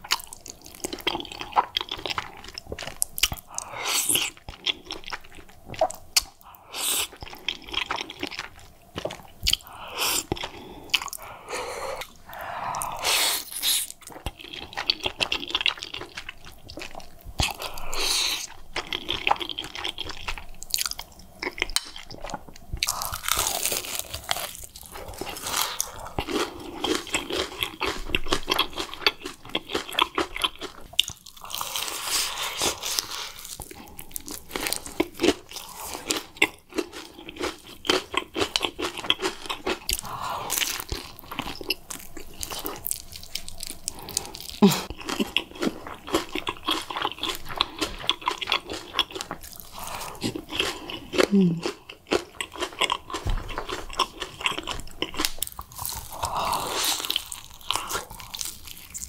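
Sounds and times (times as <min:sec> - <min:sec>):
crackly mouth sounds: 0:00.0 - 0:59.0
crunching and wet chewing: 0:00.0 - 0:59.0.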